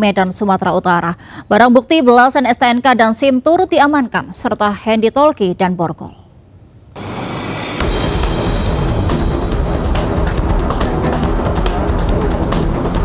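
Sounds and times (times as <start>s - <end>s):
background music: 7.0s - 13.0s
low bass beat: 7.0s - 13.0s
percussive hits: 7.0s - 13.0s.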